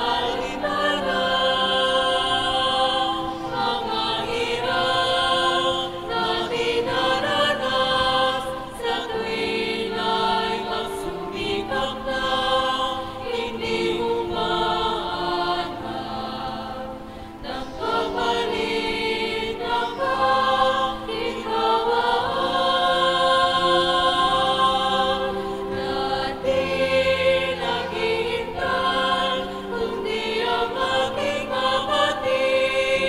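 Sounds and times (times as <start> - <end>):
choir singing a hymn: 0.0 - 33.0.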